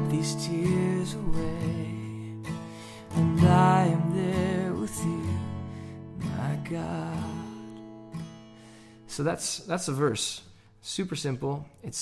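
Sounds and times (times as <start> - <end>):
acoustic guitar strumming chords: 0.0 - 9.6.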